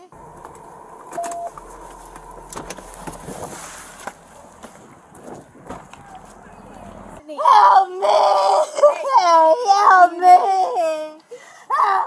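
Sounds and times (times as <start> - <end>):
car engine rumble: 0.0 - 7.2
faint steady hum: 0.0 - 7.2
clicks: 0.1 - 6.4
short beep: 1.1 - 3.0.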